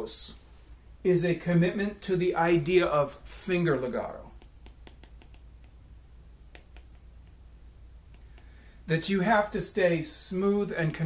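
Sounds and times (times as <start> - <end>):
low steady hum: 0.0 - 11.0
stylus tapping on tablet screen: 4.3 - 5.8, 6.5 - 7.4, 8.1 - 8.6.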